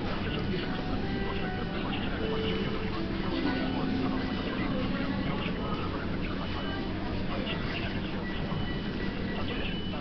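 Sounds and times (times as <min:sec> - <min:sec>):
faint background music: 0:00.0 - 0:10.0
murmur of voices: 0:00.0 - 0:10.0.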